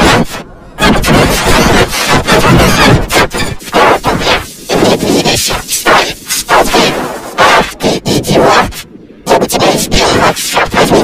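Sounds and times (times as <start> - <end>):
distorted cartoon shout: 0.0 - 7.7.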